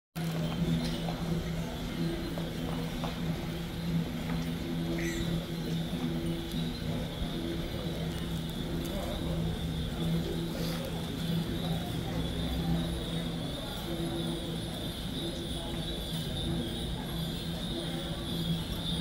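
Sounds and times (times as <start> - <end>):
indistinct voices: 0.2 - 19.0.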